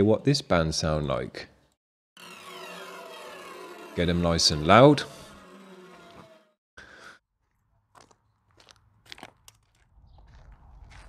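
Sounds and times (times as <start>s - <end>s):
footsteps crunching on gravel: 7.4s - 11.0s.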